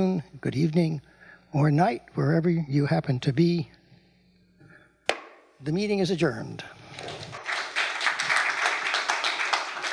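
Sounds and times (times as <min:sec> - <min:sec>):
audience applauding: 0:07.1 - 0:09.9.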